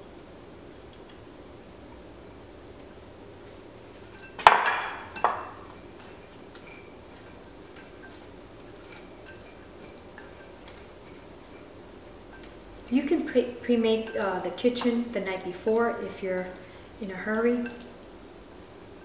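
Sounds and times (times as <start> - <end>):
glass bowl clinking: 4.0 - 11.7
spatula tapping glass bowl: 4.2 - 6.9.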